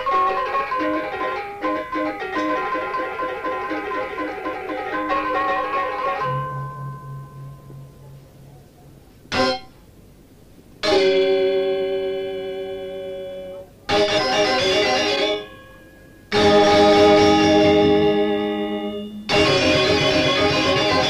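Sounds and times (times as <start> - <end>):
gamelan metallophones and gongs: 0.0 - 8.1.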